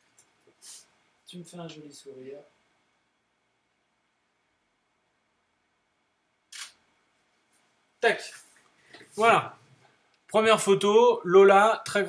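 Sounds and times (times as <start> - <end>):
camera shutter click: 6.5 - 6.8.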